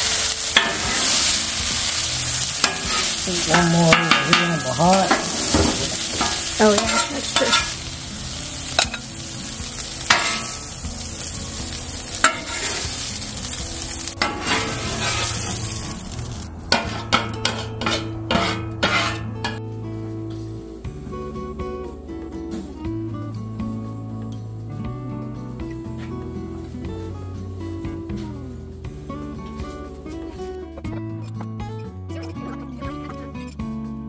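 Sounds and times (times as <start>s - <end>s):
meat sizzling on a griddle: 0.0s - 19.6s
metal spatula scraping griddle: 0.0s - 19.6s
background music: 0.0s - 34.0s.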